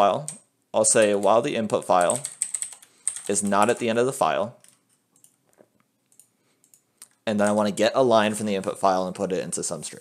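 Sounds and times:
keyboard keystrokes: 2.0s - 3.8s.

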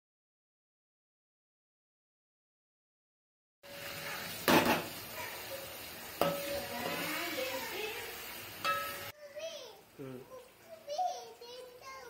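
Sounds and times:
vegetables sizzling in hot oil: 3.6s - 12.0s
metal spatula knocking on pot: 6.2s - 7.0s, 8.6s - 9.0s.

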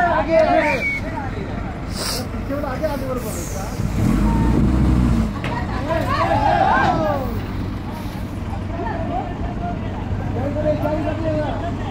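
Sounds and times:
faint voices talking: 0.0s - 11.9s
heavy vehicle engine humming: 0.0s - 11.9s.

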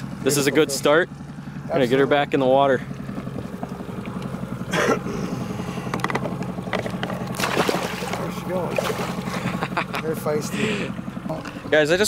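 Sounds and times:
outboard motor humming: 0.0s - 12.0s.

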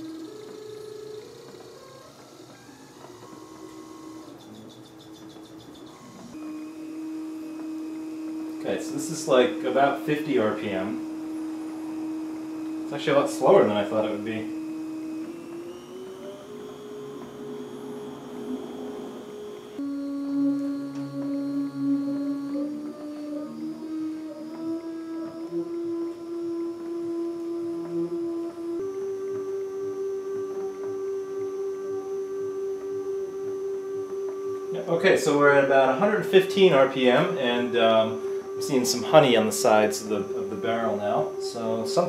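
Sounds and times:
stepper motor whining: 0.0s - 42.0s.

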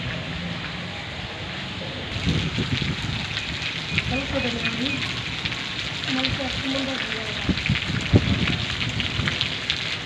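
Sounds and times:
rain falling on wet ground: 1.6s - 10.0s.

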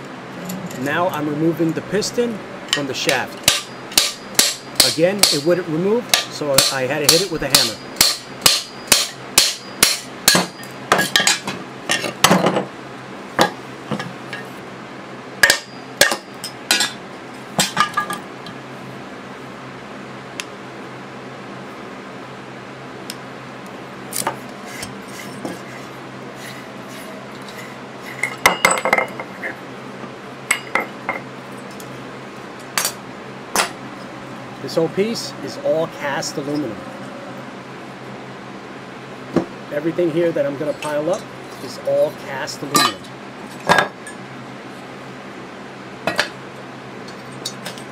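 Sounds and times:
steady low hum: 0.0s - 47.9s.

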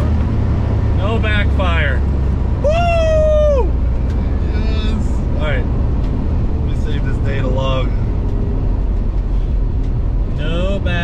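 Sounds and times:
car cabin drone: 0.0s - 11.0s
man cheering woo: 2.6s - 3.8s.

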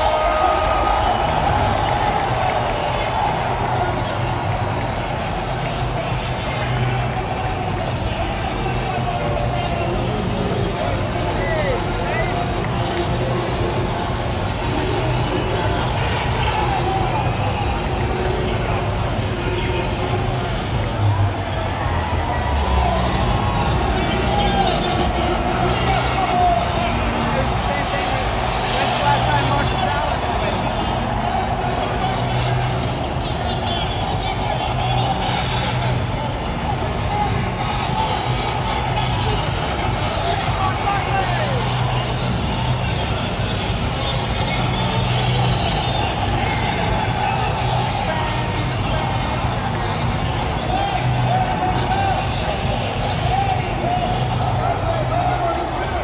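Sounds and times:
stadium crowd roar: 0.0s - 56.0s
stadium loudspeakers: 0.0s - 56.0s.

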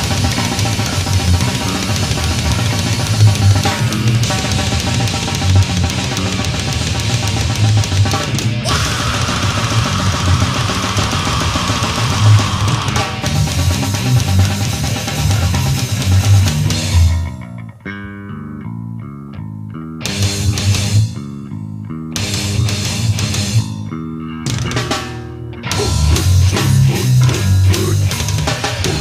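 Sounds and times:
drums: 0.0s - 17.9s, 19.4s - 29.0s
death metal band playing: 0.0s - 29.0s
distorted guitar riff: 0.0s - 29.0s.

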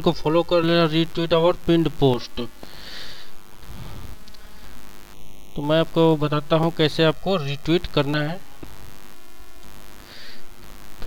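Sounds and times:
microphone hiss and hum: 0.0s - 11.0s.

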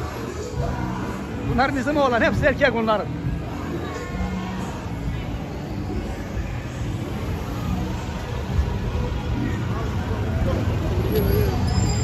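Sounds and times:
low road noise: 0.0s - 12.0s
motorbike engines passing: 4.8s - 12.0s.

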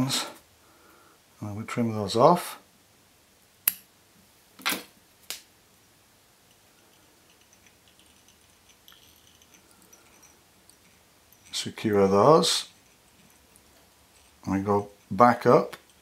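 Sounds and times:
faint handling: 6.4s - 16.0s.

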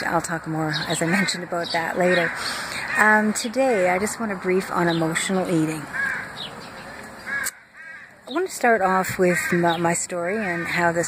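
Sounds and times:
bird calling: 0.0s - 11.0s
faint outdoor hiss: 0.0s - 11.0s.

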